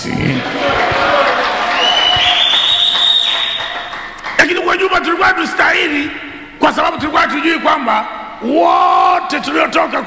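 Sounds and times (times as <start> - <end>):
high-pitched whistle tone: 1.8 - 3.7.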